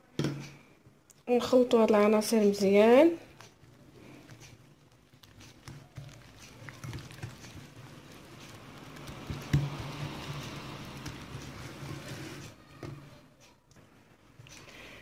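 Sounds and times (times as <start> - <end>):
whisk scraping in a bowl: 3.3 - 12.6.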